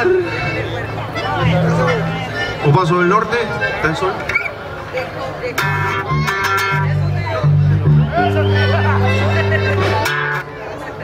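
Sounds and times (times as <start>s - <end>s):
strummed guitar chords: 0.0s - 2.7s, 5.5s - 10.8s
bass notes: 0.0s - 3.0s, 5.6s - 10.6s
live band playing through pa: 0.0s - 11.0s
voices: 0.0s - 11.0s.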